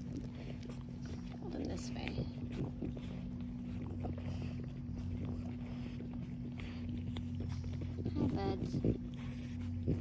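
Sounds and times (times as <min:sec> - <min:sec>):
faint rustles and clicks: 0:00.0 - 0:10.0
steady low-pitched hum: 0:00.0 - 0:10.0.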